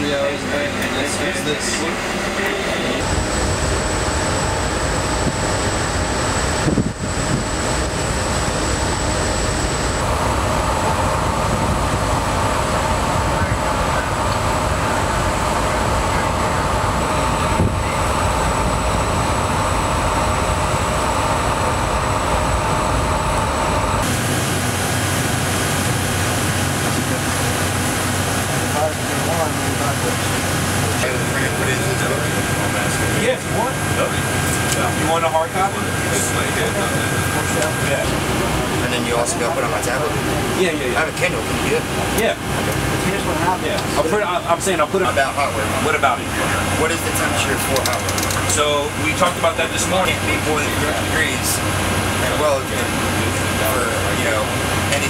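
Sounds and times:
ship machinery rumble: 0.0s - 55.0s
ventilation hum: 0.0s - 55.0s
wind: 0.0s - 55.0s.

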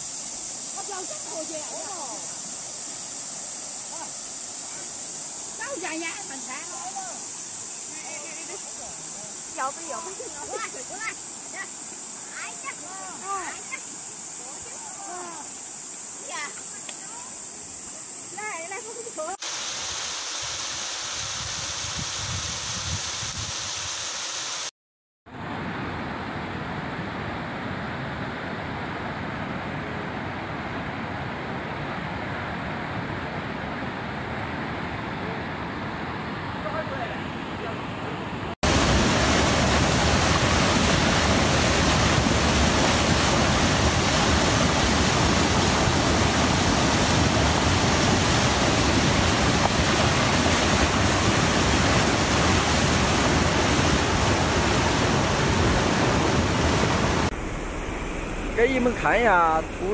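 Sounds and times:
floodwater rushing in river: 0.0s - 15.6s, 31.4s - 59.9s.

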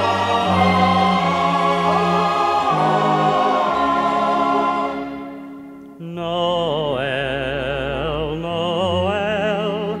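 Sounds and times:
choir singing held chords: 0.0s - 10.0s
musical accompaniment: 0.0s - 10.0s.

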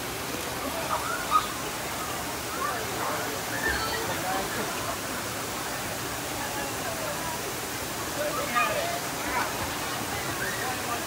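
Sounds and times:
fountain water cascading into pool: 0.0s - 11.0s.

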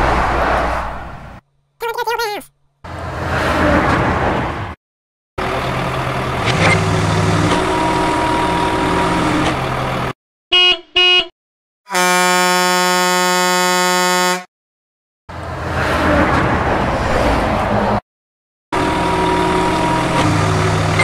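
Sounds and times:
truck engine running: 5.4s - 10.1s, 18.8s - 21.0s
truck horn toots and blast: 10.5s - 14.5s.

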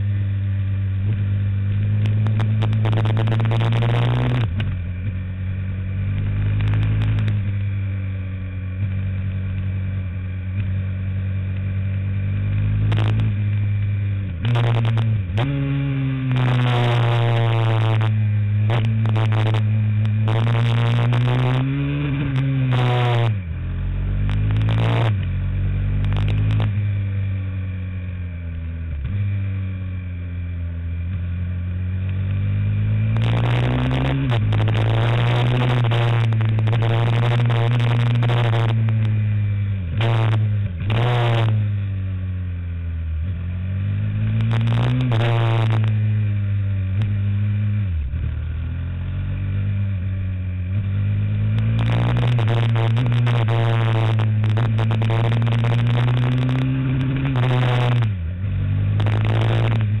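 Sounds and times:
racing kart engine: 0.0s - 60.0s
wind and road noise: 0.0s - 60.0s.

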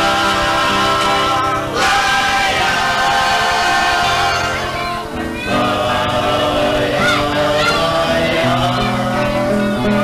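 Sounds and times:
group singing in harmony: 0.0s - 10.0s
instrumental backing: 0.0s - 10.0s.

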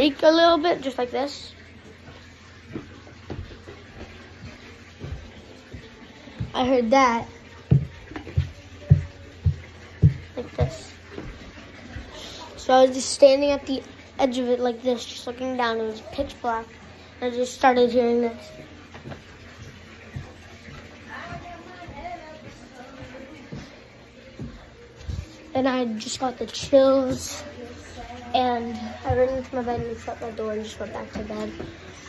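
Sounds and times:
footsteps on carpeted stairs: 2.0s - 12.1s, 18.9s - 32.0s
stair treads creaking: 7.7s - 11.4s.

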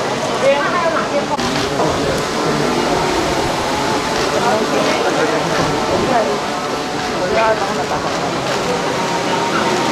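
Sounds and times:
indistinct chatter: 0.0s - 9.9s
steady background noise: 0.0s - 9.9s.

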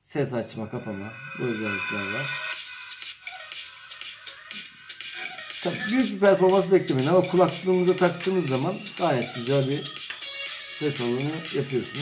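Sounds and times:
tinny music from small speaker: 0.3s - 12.0s.

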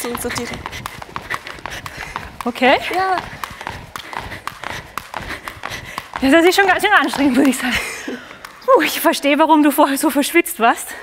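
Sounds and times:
jump ropes slapping floor: 0.0s - 9.4s.

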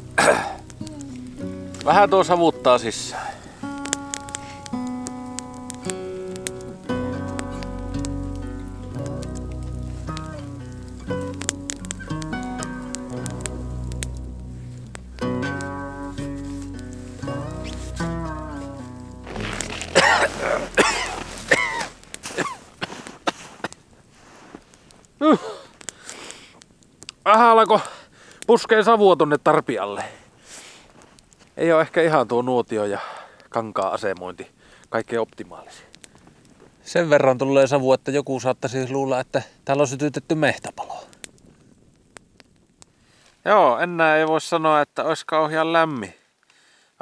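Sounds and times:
plucked melody over bass line: 3.7s - 22.3s
short loud sounds: 19.2s - 22.5s.

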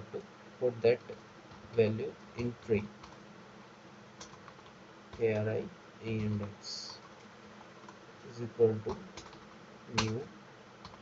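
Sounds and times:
computer keyboard keystrokes: 4.2s - 4.7s, 8.9s - 9.4s, 10.0s - 10.2s
person speaking a word: 8.3s - 9.0s, 9.9s - 10.3s.

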